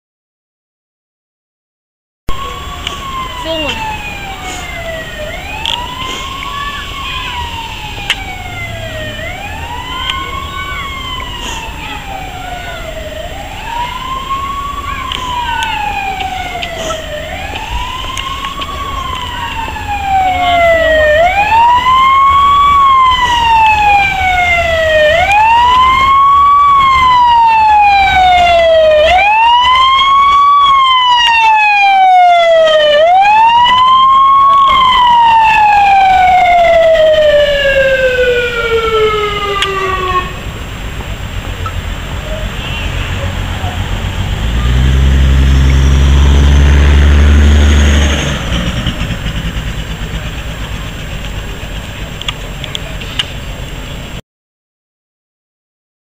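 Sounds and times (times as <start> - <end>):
wailing siren: 2.3 - 53.0.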